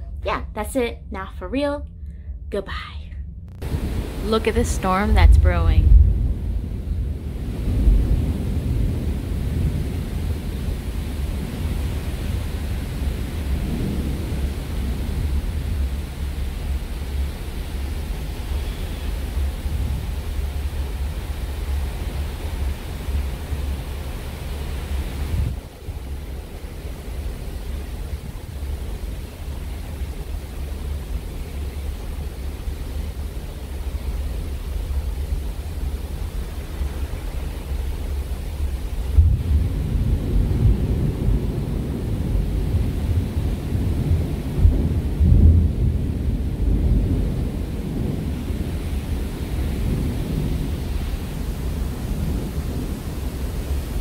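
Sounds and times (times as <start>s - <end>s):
sea washing along ship: 3.6s - 54.0s
wind buffeting microphone: 24.9s - 26.1s.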